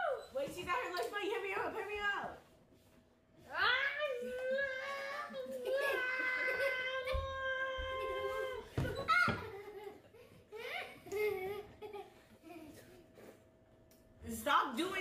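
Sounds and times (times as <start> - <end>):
child wailing: 4.0 - 9.4
child laughing: 4.9 - 13.0.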